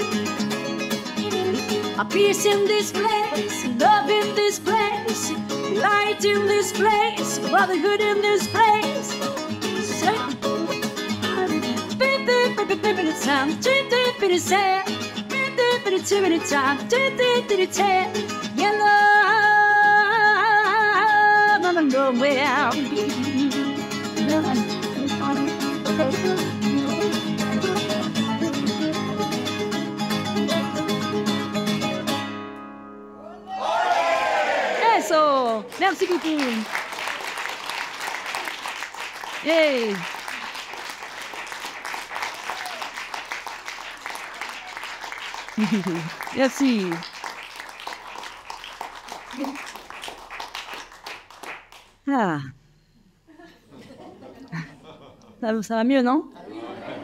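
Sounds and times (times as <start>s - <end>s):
strummed classical guitar: 0.0s - 33.2s
woman singing wordlessly: 1.2s - 28.7s.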